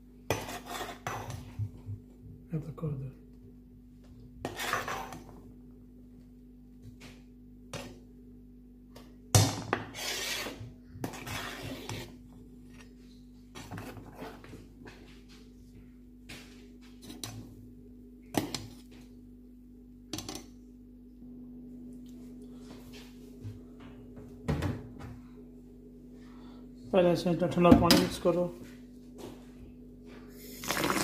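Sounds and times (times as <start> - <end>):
steady low hum: 0.0 - 30.7
metal spoon scraping a pot: 0.3 - 1.3, 4.4 - 5.3, 9.9 - 12.2.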